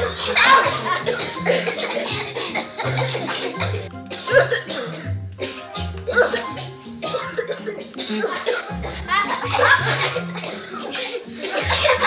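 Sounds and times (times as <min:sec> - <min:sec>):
background music with bass line: 0:00.0 - 0:10.5, 0:11.4 - 0:12.0
children fake-coughing: 0:00.0 - 0:12.0.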